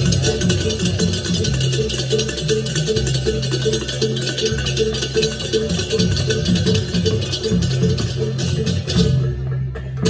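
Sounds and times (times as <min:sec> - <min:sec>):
low gong and drum tones: 0:00.0 - 0:10.0
rapid cymbal clashing: 0:00.0 - 0:10.0.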